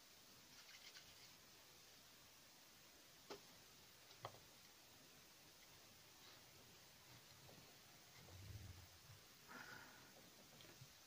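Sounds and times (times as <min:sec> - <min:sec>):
soft ticks kneading plasticine: 0:03.2 - 0:09.2, 0:10.1 - 0:11.0.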